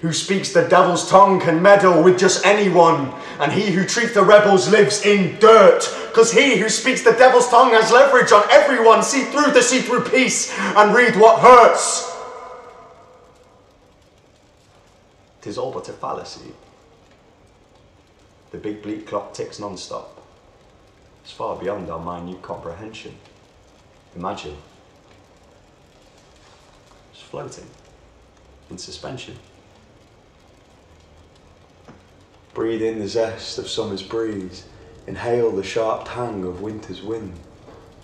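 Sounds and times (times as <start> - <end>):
echo of man's voice: 0.0 - 13.2
faint low room hum: 0.0 - 38.0.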